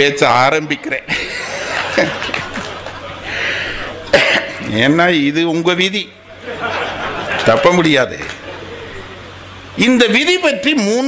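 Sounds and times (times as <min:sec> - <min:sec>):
sharp loud cough: 0:04.0 - 0:04.7.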